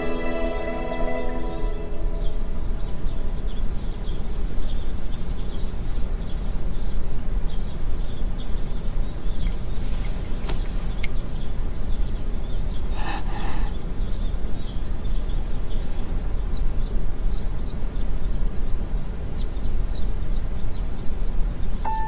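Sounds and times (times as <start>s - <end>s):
small birds chirping: 1.2s - 22.0s.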